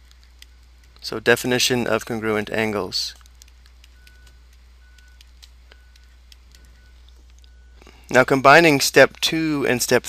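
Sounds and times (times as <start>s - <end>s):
low electrical hum: 0.0s - 10.0s
stylus tapping on tablet screen: 3.2s - 7.5s.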